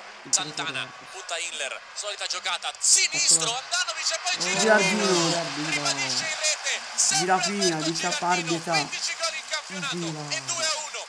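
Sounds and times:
man giving football commentary: 0:00.3 - 0:11.0.

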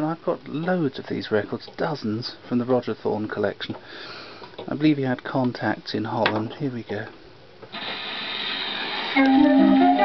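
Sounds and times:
record surface hiss: 0:00.0 - 0:10.0.

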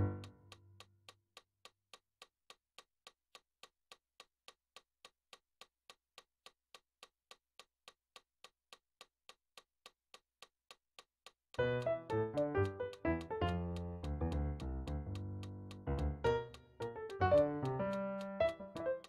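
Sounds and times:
digital piano notes and chords: 0:00.0 - 0:00.3, 0:11.6 - 0:19.0
metronome clicking: 0:11.6 - 0:19.0.

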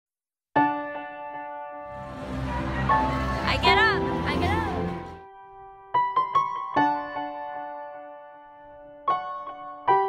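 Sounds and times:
soft piano music: 0:00.6 - 0:10.0.

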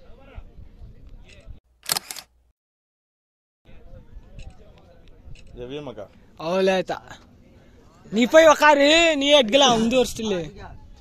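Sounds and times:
camera shutter clicking: 0:01.8 - 0:02.4.

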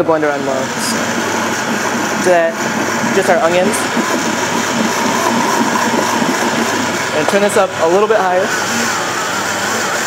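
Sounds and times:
blender running: 0:00.0 - 0:10.0.

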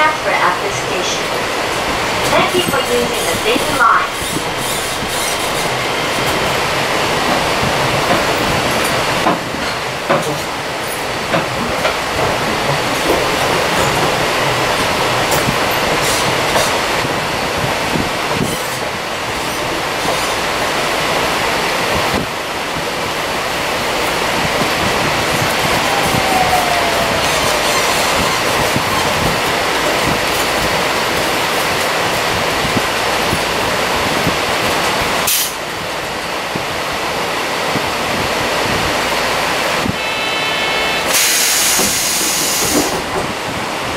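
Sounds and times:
train tyres rumbling and hissing: 0:00.0 - 0:43.9.

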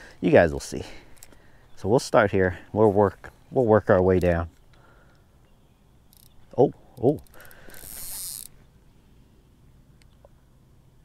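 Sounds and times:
fishing reel buzzing: 0:07.2 - 0:08.6.

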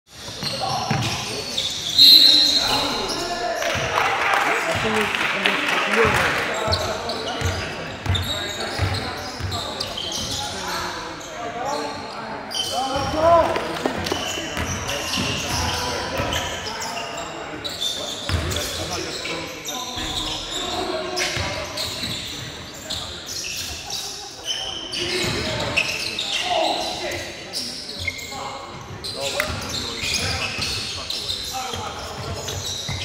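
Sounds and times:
sneaker squeaks: 0:00.1 - 0:03.9, 0:06.0 - 0:33.0
players calling out: 0:00.2 - 0:11.0.

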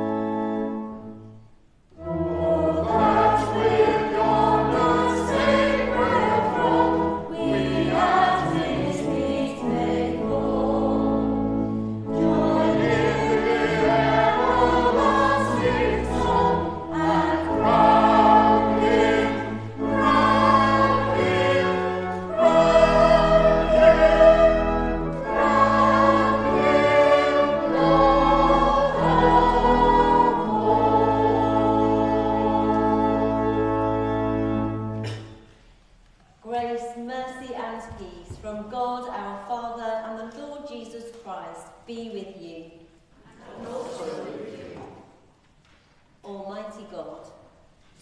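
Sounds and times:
organ playing: 0:00.0 - 0:35.2
church choir singing: 0:00.0 - 0:35.3, 0:43.1 - 0:45.2.

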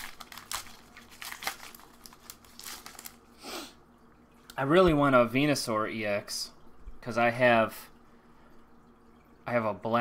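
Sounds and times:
trading cards rustling: 0:00.0 - 0:03.2.

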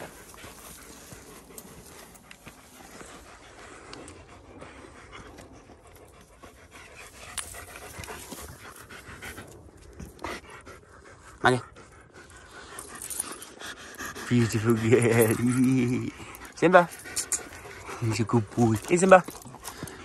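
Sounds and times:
dog panting: 0:00.0 - 0:20.0.

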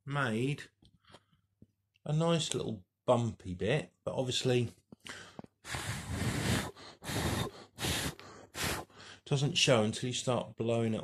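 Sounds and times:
person blowing hard: 0:05.6 - 0:09.0.

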